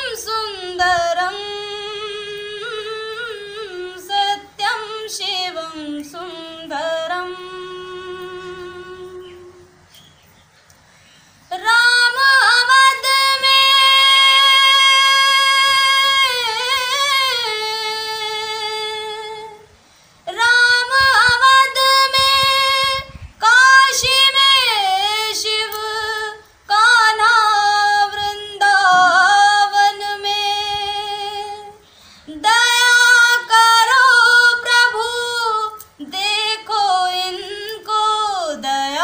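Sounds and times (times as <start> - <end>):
woman singing devotional song: 0.0 - 10.2, 11.2 - 39.0.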